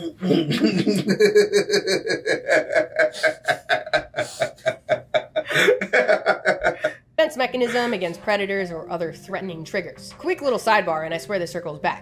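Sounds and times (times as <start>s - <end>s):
people laughing hard: 0.5s - 7.0s.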